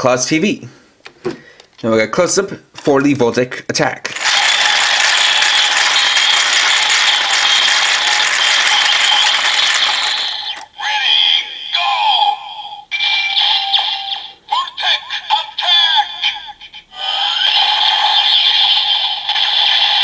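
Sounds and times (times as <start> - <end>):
toy gears ratcheting: 4.1 - 10.7, 17.1 - 20.0
looping electronic toy sound: 4.2 - 20.0.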